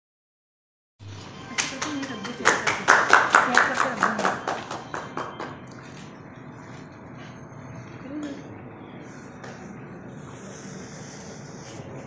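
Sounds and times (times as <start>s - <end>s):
people clapping: 1.4s - 6.1s.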